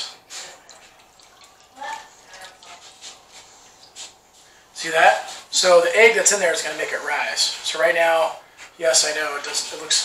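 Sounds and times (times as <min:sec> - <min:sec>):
liquid pouring and dripping: 0:00.0 - 0:04.5.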